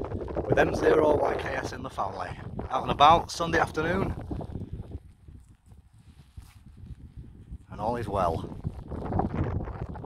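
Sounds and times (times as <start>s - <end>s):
wind rumble on microphone: 0.0s - 10.0s
footsteps on stony path: 4.1s - 7.7s.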